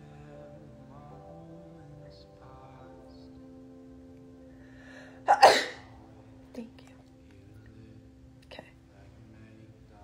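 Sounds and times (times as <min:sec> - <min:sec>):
person sneezing: 0:05.3 - 0:06.0.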